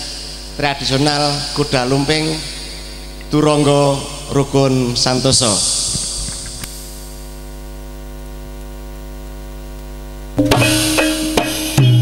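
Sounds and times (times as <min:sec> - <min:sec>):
electrical mains hum: 0:00.0 - 0:12.0
loud drum percussion music: 0:10.4 - 0:12.0.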